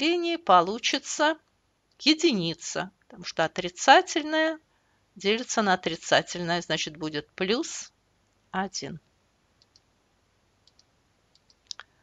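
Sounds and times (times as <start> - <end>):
faint clicks in pairs: 9.6 - 9.9, 10.6 - 11.9.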